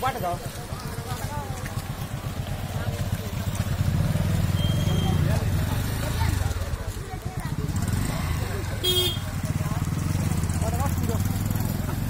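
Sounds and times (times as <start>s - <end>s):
motorcycle engine idling: 0.0s - 12.0s
horn toot: 8.8s - 9.3s.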